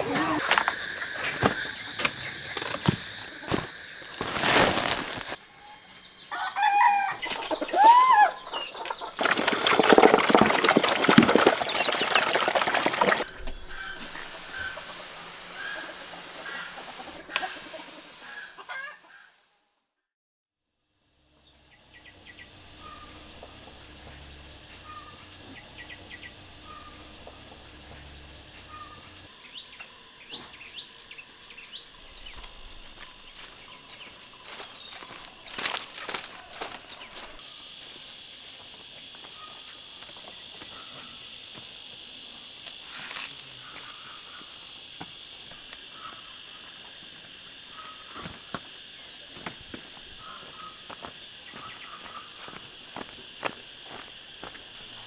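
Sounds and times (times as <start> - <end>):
chickens clucking: 7.2 - 7.8, 8.4 - 19.2.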